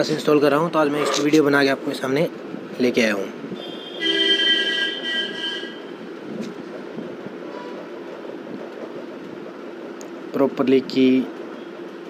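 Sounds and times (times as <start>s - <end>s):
horn-like steady tones: 3.6s - 6.0s.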